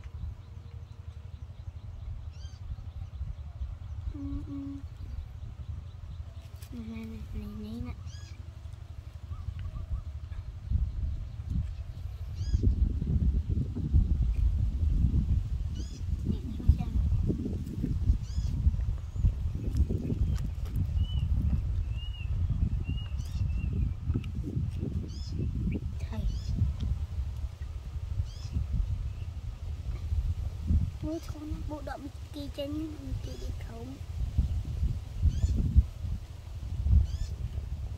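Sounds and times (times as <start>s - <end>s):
wind buffeting microphone: 0.0s - 37.9s.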